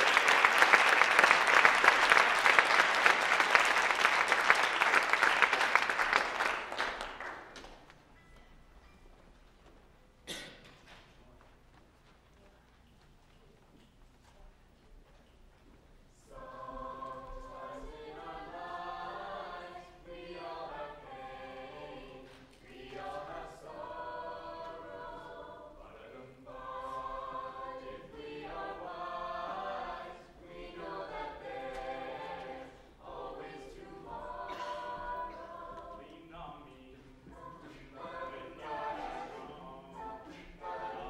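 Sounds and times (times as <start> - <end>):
a cappella group singing in harmony: 16.2 - 41.0.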